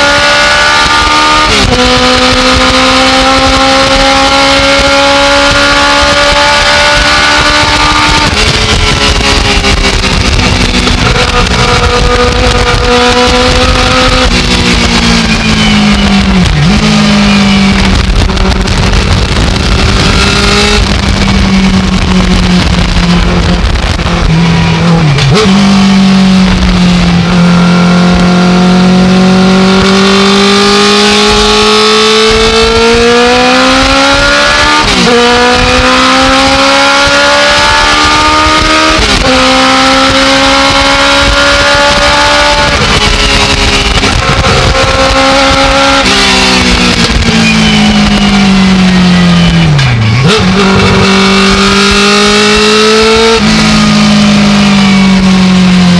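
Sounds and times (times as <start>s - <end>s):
race car engine revving: 0.0s - 55.9s.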